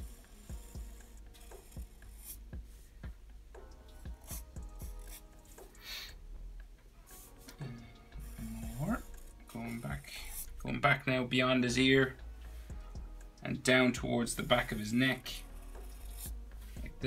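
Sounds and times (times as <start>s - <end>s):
marker scratching on paper: 0.0s - 3.0s, 4.0s - 5.9s, 7.1s - 10.6s, 14.4s - 17.0s
faint background music: 0.0s - 17.0s.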